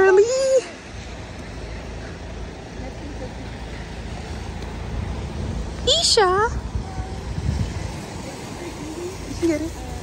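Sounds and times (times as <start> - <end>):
car engine rumble: 0.0 - 10.0
road traffic: 0.0 - 10.0
tyres hissing on wet road: 0.0 - 10.0.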